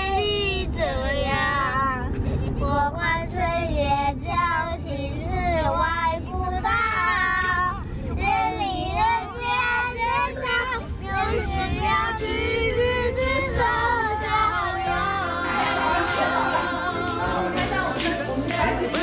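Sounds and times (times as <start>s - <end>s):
car rumbling: 0.0s - 19.0s
young children singing: 8.2s - 19.0s.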